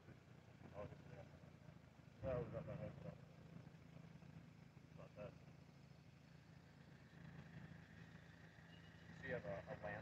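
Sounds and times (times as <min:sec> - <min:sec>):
distant conversation: 0:09.1 - 0:10.0.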